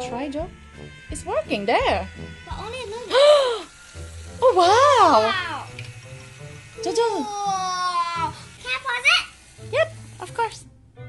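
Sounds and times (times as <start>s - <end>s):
quiet background music: 0.0s - 11.0s
child speaking: 2.5s - 3.2s, 4.9s - 5.7s, 6.9s - 9.4s.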